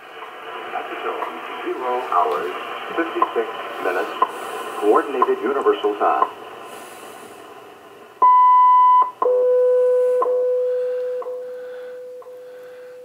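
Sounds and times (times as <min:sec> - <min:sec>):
radio hiss: 0:00.0 - 0:08.2
high time signal beep: 0:08.2 - 0:12.8
steady low tone: 0:08.2 - 0:13.0.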